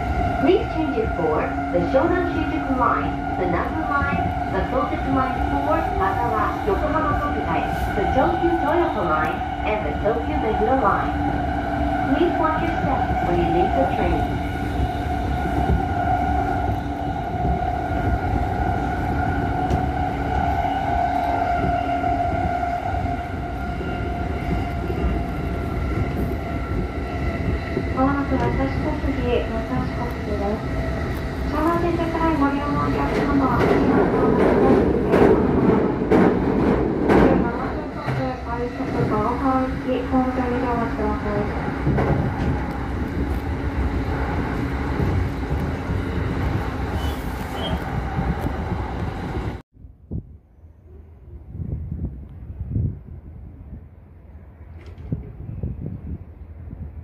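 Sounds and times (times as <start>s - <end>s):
train wheels rumbling on rail: 0.0s - 49.6s
passing train rush: 0.0s - 57.0s.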